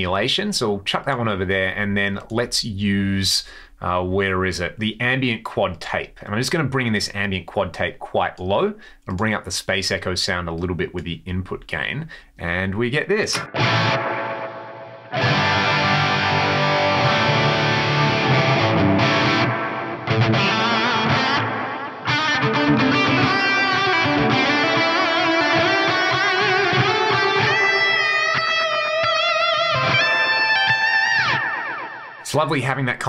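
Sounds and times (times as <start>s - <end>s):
distorted electric guitar with delay: 13.3s - 32.3s.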